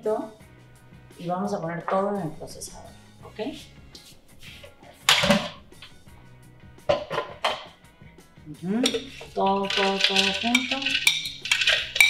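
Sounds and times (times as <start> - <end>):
soft background music: 0.0 - 12.0
spoon scraping plastic bowl: 8.8 - 12.0.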